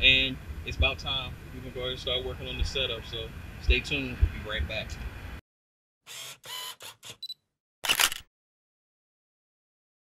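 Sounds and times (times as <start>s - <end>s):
camera mechanism sounds: 7.8s - 8.3s
camera shutter click: 7.8s - 8.3s.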